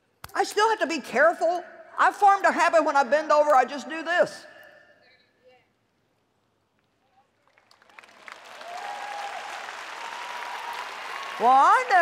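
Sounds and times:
audience applauding: 7.4 - 12.0.

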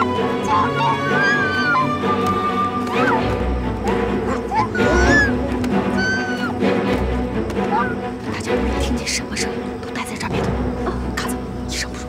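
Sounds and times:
tense background music: 0.0 - 12.0
woman screaming for help: 4.4 - 6.6.

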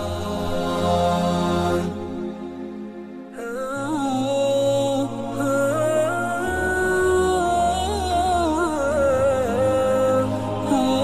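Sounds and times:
low steady drone: 0.0 - 11.0
voice chanting long notes: 0.0 - 11.0.

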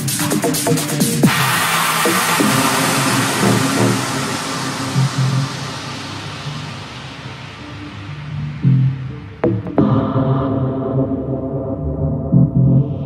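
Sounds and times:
hissing noise sweep: 0.0 - 9.8
low repeating synth line: 1.2 - 13.0.

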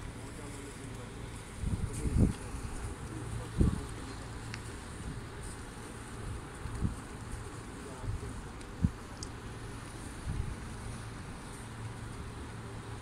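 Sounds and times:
wind buffeting microphone: 1.3 - 9.2, 9.9 - 12.1.

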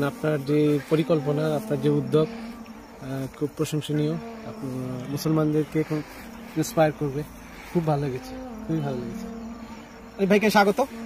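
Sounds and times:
steady buzz: 0.0 - 11.0
man speaking: 3.0 - 9.3.

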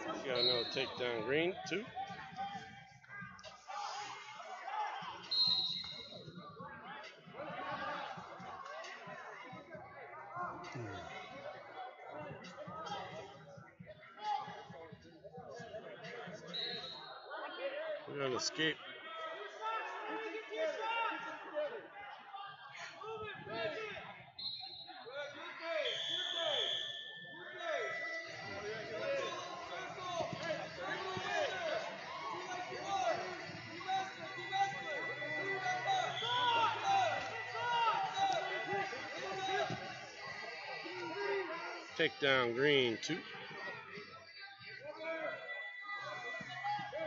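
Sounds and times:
background voices and chatter: 0.0 - 47.0
spectators and coaches calling out: 0.0 - 47.0.

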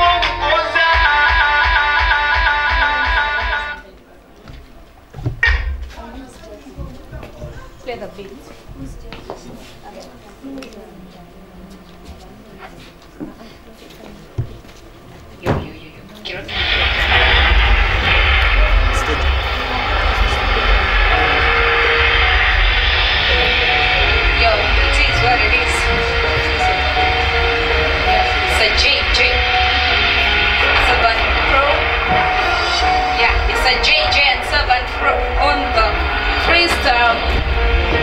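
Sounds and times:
loud amplified music: 0.0 - 3.8, 16.5 - 38.0
crowd noise: 0.0 - 38.0.

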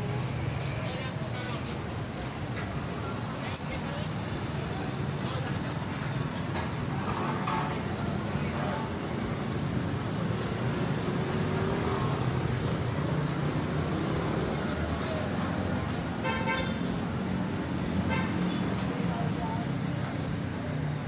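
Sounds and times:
traffic engine rumble: 0.0 - 21.0
vehicle horn: 16.2 - 16.9.

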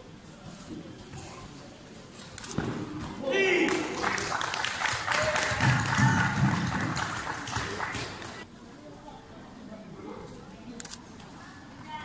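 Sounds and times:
crowd voices: 0.0 - 12.0
sharp claps: 3.7 - 8.4.

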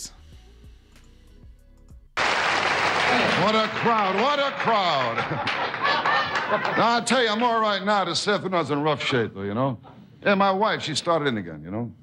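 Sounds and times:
faint background music: 0.0 - 2.2
audience applause and cheering: 2.2 - 7.7.

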